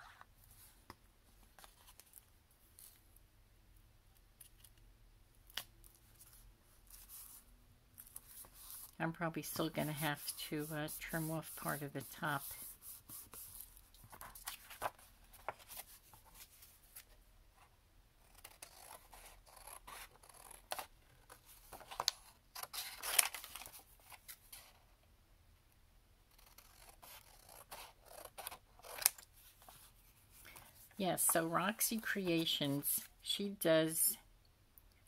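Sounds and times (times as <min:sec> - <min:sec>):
paper rustling: 0:08.0 - 0:17.2.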